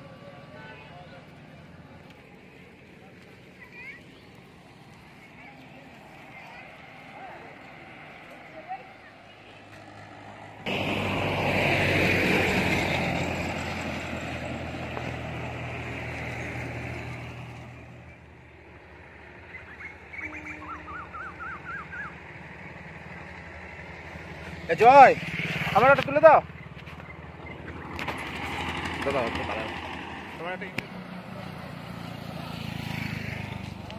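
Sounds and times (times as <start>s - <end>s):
vehicle engine passing by: 0.0s - 33.9s.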